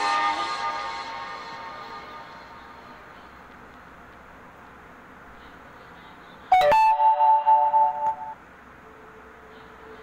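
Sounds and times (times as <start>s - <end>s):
electronic chime: 6.6s - 8.4s.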